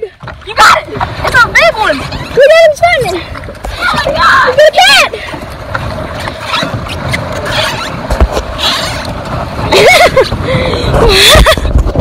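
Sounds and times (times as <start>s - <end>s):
steady rushing noise: 0.4s - 12.0s
excited high-pitched shouting: 3.7s - 5.2s.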